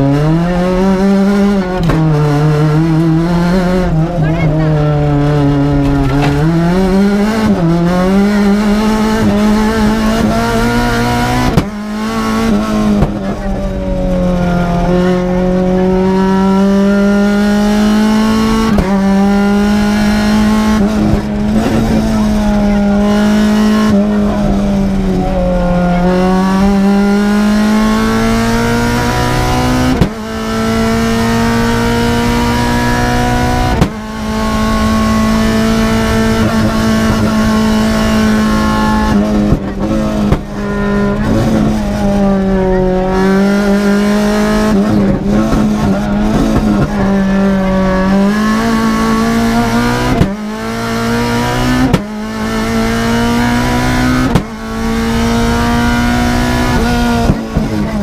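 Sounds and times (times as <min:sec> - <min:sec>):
car engine at high revs: 0:00.0 - 0:58.0.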